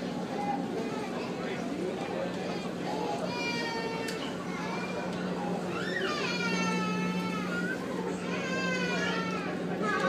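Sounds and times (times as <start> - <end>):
ferry engines humming: 0.0 - 10.0.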